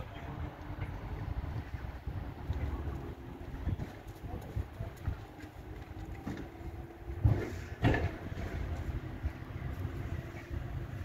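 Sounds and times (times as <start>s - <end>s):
distant electric locomotive hum: 0.0s - 11.0s
wind on microphone: 0.0s - 11.0s.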